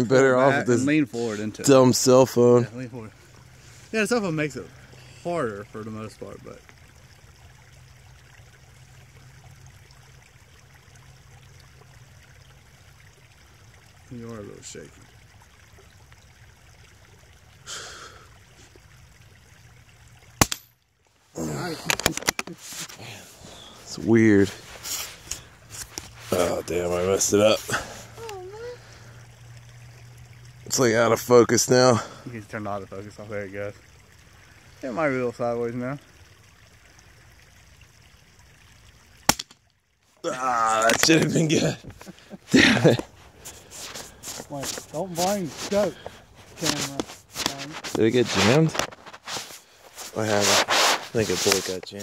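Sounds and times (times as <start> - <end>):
low steady hiss: 0.0 - 52.0.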